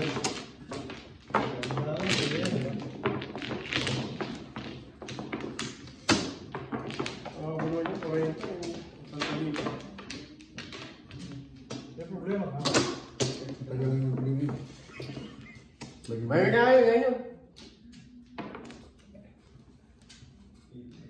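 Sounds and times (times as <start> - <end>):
people talking: 1.4 - 3.0, 7.3 - 10.2.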